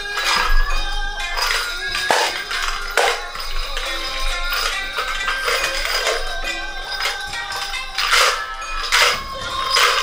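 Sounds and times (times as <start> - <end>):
hand drums jingling: 0.0 - 10.0
traditional dance music: 0.0 - 10.0.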